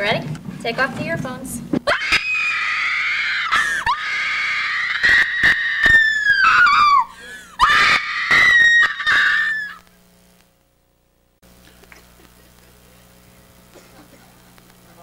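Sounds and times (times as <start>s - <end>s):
woman screaming: 1.9s - 9.8s.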